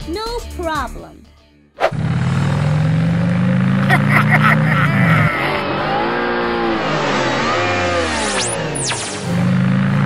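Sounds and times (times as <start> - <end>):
engine notes rising and falling: 1.8 - 10.0.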